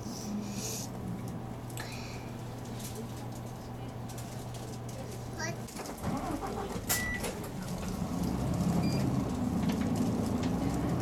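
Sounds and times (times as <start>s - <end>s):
bus diesel engine running: 0.0s - 11.0s.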